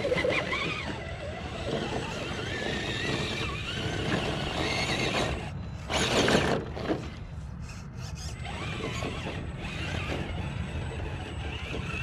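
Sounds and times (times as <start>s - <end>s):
electric motor and drivetrain whine: 0.0s - 12.0s.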